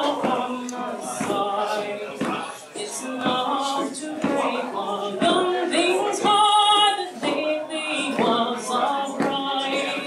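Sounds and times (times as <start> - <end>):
woman singing a ballad: 2.8 - 10.0.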